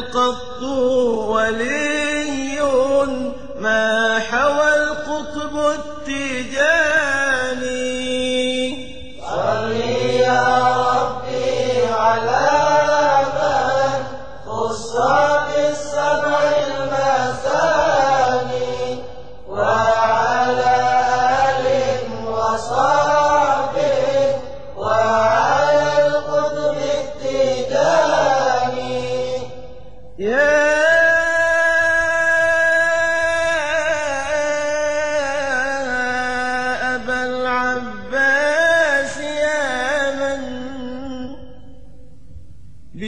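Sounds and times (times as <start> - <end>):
person chanting devotional song: 0.0 - 41.9.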